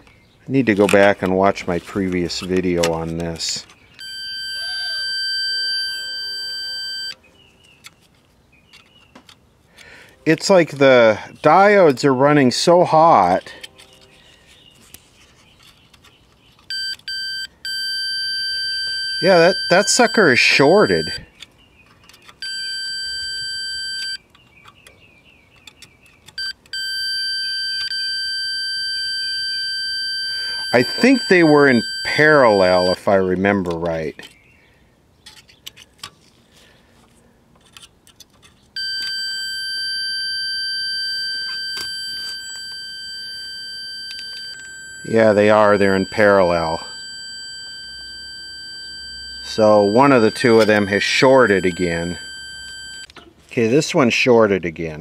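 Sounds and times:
multimeter continuity beeps: 0:04.0 - 0:07.2, 0:16.7 - 0:21.3, 0:22.3 - 0:24.2, 0:26.3 - 0:33.1, 0:38.8 - 0:53.1
faint probe clicks: 0:44.1 - 0:53.2.

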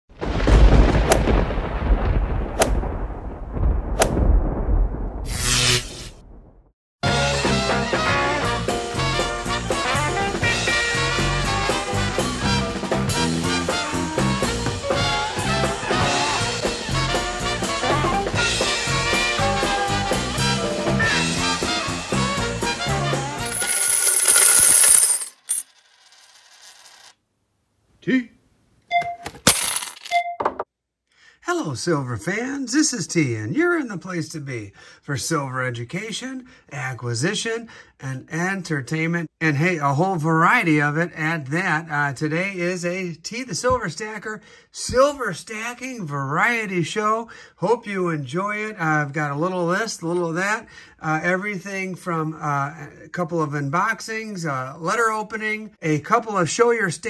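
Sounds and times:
sharp cracks: 0:00.4 - 0:01.8, 0:02.4 - 0:03.2, 0:03.9 - 0:04.4
upbeat swing music: 0:07.3 - 0:21.7
metallic clatter of coins: 0:23.4 - 0:27.1, 0:29.5 - 0:30.2
single coin clinks: 0:23.4 - 0:27.1, 0:29.0 - 0:30.3.

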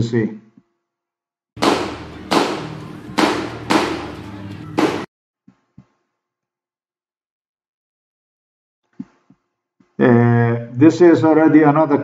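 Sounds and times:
sharp bangs with echo: 0:01.6 - 0:05.1.

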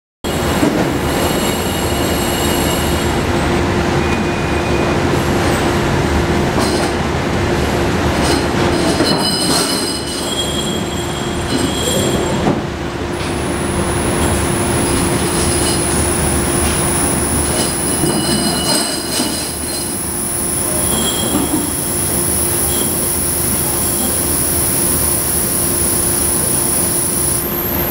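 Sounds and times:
loud steady hiss: 0:19.5 - 0:27.9.

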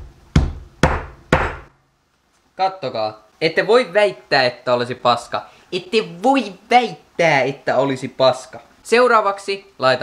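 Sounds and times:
hammer crushing garlic on board: 0:00.4 - 0:01.7.

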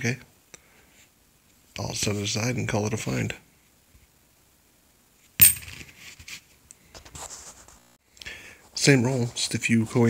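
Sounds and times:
coins handled clicking: 0:05.4 - 0:05.8
coin set down clinking: 0:05.4 - 0:05.9.

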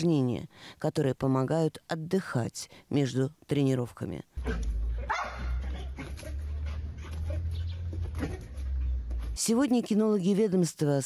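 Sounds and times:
dog barking: 0:04.4 - 0:08.6.

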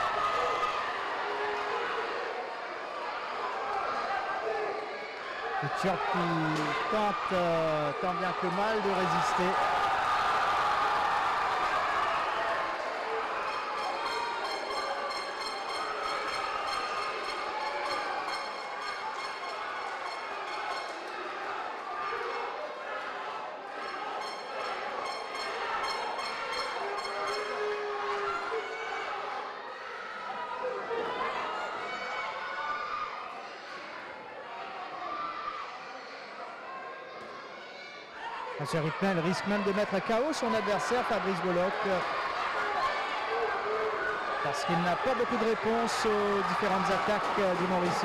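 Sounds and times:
crowd shouting and cheering: 0:00.0 - 0:48.0.

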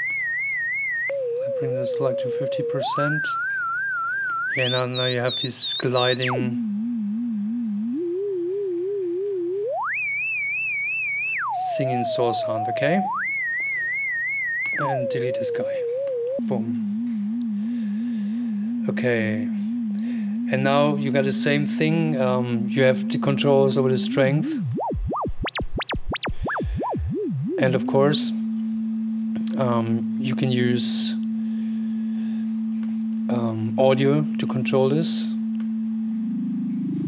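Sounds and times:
gliding wavering sine tone: 0:00.0 - 0:37.0.

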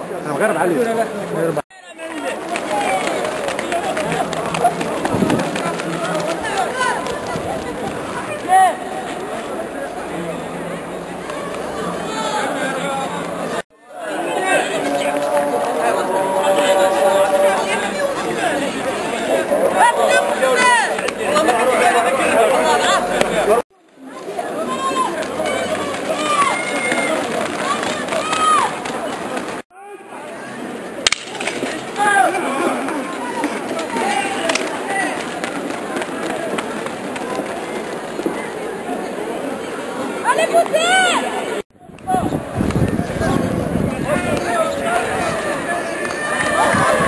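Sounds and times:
background chatter: 0:00.0 - 0:47.0
runners' footsteps on a track: 0:02.0 - 0:09.5, 0:24.2 - 0:29.6, 0:32.7 - 0:39.0
people shouting: 0:19.3 - 0:23.6, 0:24.6 - 0:28.8, 0:44.5 - 0:47.0.

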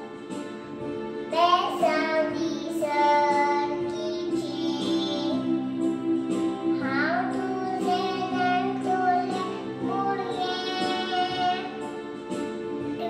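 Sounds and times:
instrumental backing music: 0:00.0 - 0:13.0
girl singing into a microphone: 0:01.3 - 0:05.5, 0:06.8 - 0:11.9.

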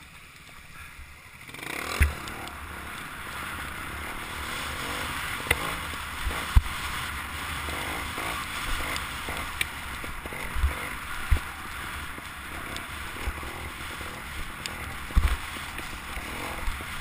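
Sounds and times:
motorcycle engine: 0:00.0 - 0:17.0.

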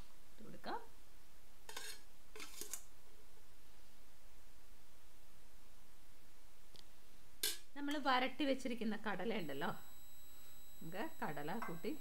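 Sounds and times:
metal spoon scraping a plate: 0:01.7 - 0:02.8.

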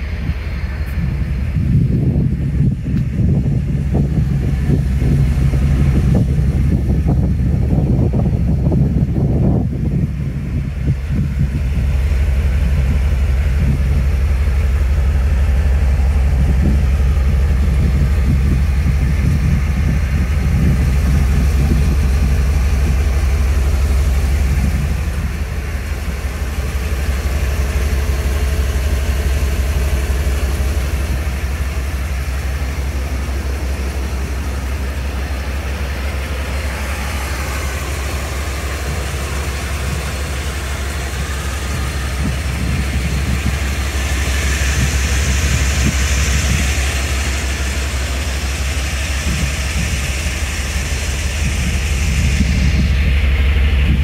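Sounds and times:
pickup engine idling: 0:00.0 - 0:54.0.

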